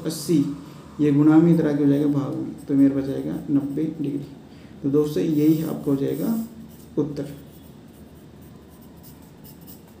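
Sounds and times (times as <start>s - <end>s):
pencil scratching on paper: 1.4s - 4.1s, 5.3s - 10.0s.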